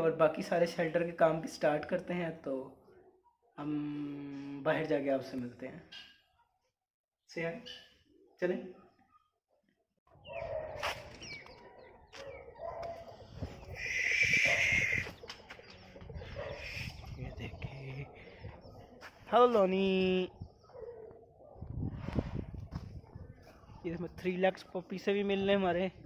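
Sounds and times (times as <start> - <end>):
birds cooing: 10.2 - 19.1
footsteps on dry ground: 10.4 - 16.6, 18.5 - 19.7, 22.1 - 23.7
bird screeching harshly: 13.8 - 15.1.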